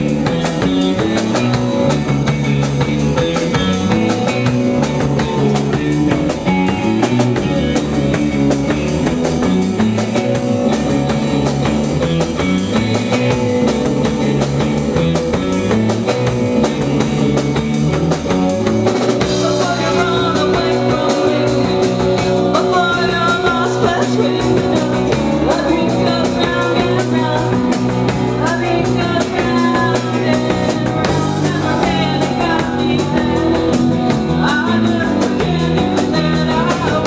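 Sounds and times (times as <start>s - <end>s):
bass guitar: 0.0s - 37.0s
drum kit beat: 0.0s - 37.0s
electric guitar: 0.0s - 37.0s.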